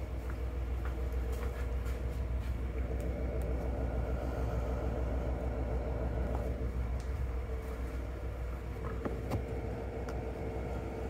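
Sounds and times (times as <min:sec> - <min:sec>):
light footsteps: 0:00.0 - 0:03.1
low rumble with hum: 0:00.0 - 0:11.0.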